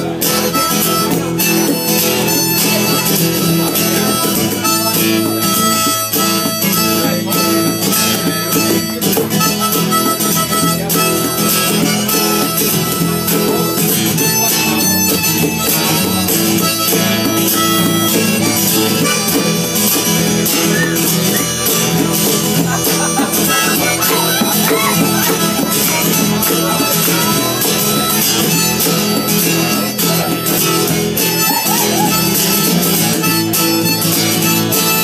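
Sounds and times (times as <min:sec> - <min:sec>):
blues harmonica: 0:00.0 - 0:35.0
strummed acoustic guitar: 0:00.0 - 0:35.0.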